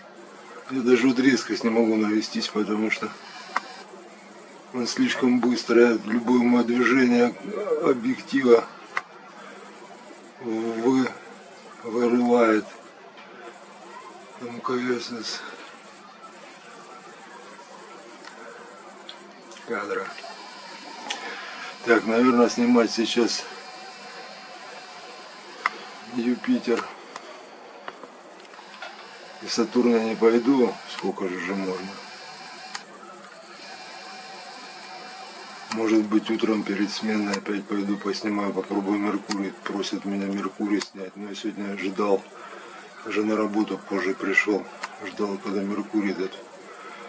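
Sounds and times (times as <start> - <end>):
crickets trilling: 0.0 - 47.0.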